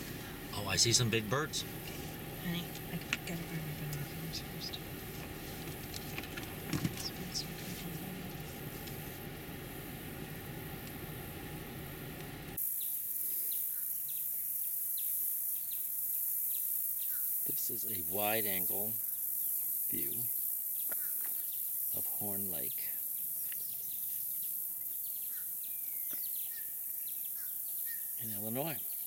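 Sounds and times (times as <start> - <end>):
birds chirping: 0.0 - 9.4, 15.0 - 29.0
vehicle idling: 0.0 - 12.6
high-pitched insect drone: 12.6 - 25.8.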